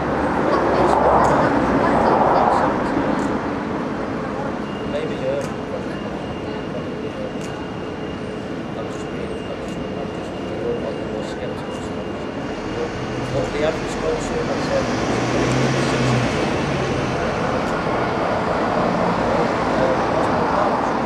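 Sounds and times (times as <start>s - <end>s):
high steady whine: 0.0s - 21.0s
traffic hum: 0.0s - 21.0s
faint indistinct talking: 0.3s - 3.4s, 4.2s - 7.8s, 8.7s - 21.0s.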